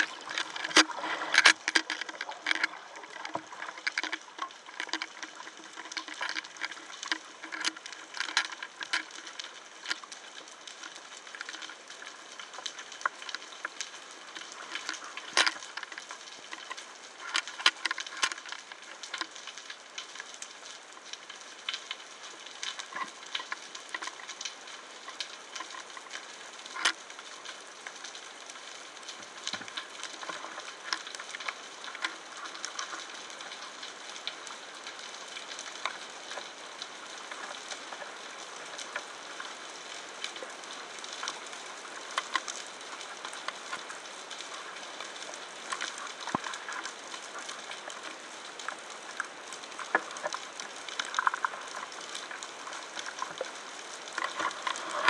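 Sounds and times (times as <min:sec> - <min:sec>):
sharp clicks and pops: 0:00.0 - 0:22.0, 0:42.1 - 0:55.0
underwater crackle: 0:00.0 - 0:55.0.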